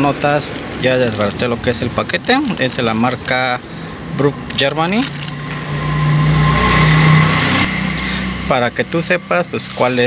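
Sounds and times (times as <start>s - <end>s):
road noise: 0.0s - 10.0s
vehicle engine passing: 0.0s - 10.0s.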